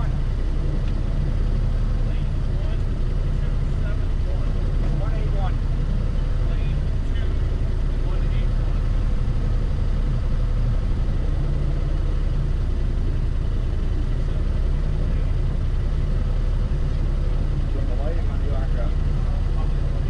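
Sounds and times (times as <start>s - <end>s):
engine idling: 0.0s - 20.0s.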